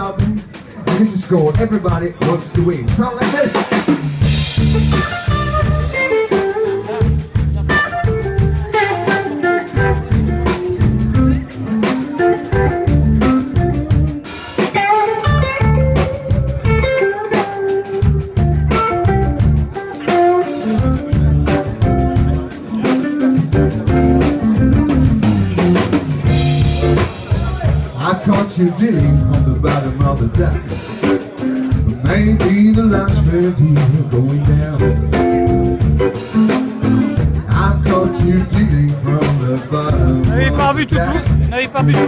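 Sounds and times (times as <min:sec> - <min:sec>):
live blues band playing: 0:00.0 - 0:42.0
electric guitar lead: 0:03.5 - 0:42.0.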